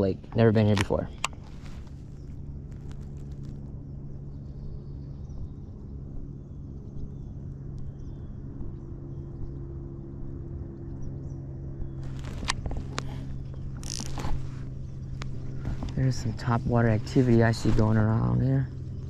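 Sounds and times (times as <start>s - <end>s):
steady low hum: 0.0s - 19.0s
brief rustle: 0.7s - 3.6s, 12.0s - 16.4s
fishing reel clicks and knocks: 13.8s - 14.2s.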